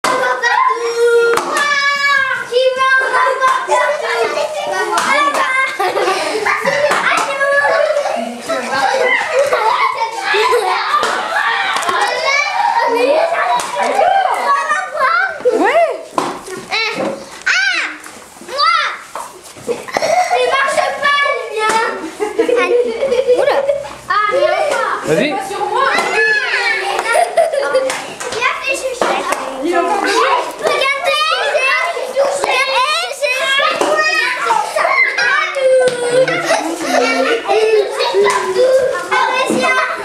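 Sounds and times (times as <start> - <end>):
children calling and chattering: 0.0 - 40.0.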